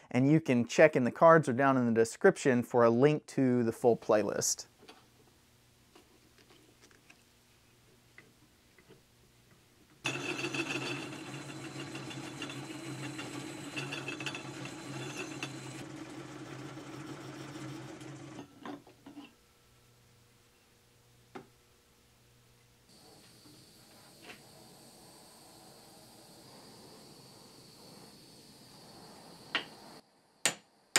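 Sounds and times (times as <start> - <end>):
metal lathe running: 10.0 - 18.5.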